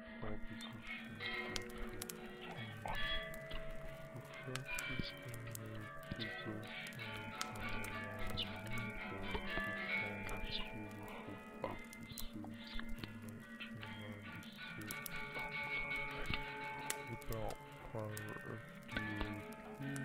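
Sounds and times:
music: 0.0s - 20.0s
steady held tones: 0.0s - 20.0s
voices: 0.0s - 20.0s
sharp clicks: 0.6s - 20.0s.

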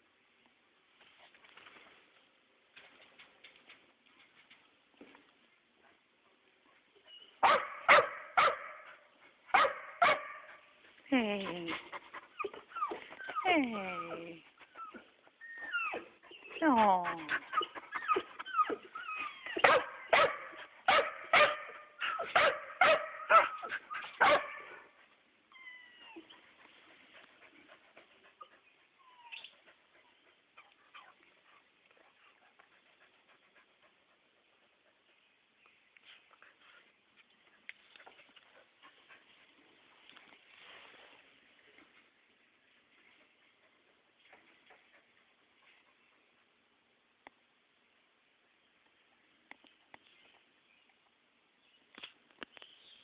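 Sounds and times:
faint whimpering calls: 11.1s - 19.6s.

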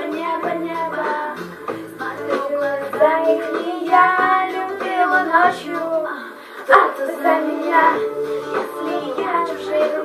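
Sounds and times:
girl singing: 0.0s - 10.0s
pop song: 0.0s - 10.0s.

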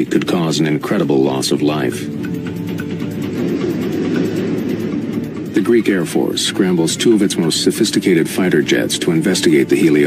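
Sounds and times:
jet airliner cabin rumble: 0.0s - 10.0s.

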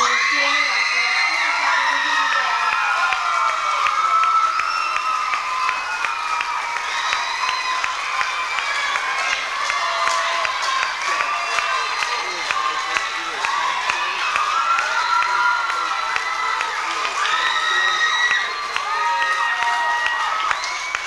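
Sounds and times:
audience cheering and whooping: 0.0s - 21.0s
scattered handclaps: 2.5s - 21.0s.

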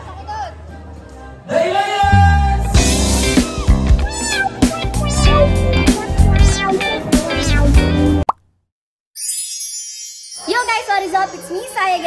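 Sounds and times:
background music: 0.0s - 8.2s
high twinkling chime: 9.2s - 11.2s.

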